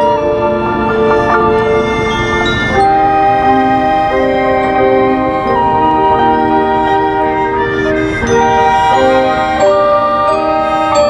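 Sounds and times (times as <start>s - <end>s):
marching band wind chords: 0.0s - 11.0s.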